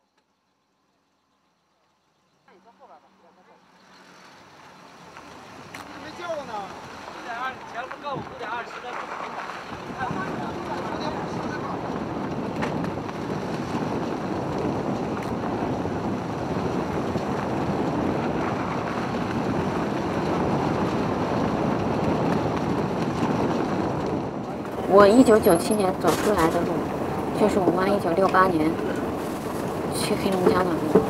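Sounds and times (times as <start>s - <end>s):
wind and road noise: 0.1s - 31.0s.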